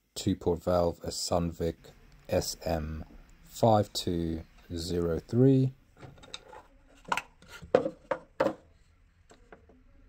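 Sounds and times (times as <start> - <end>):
plastic clicks and knocks: 6.0 - 8.6.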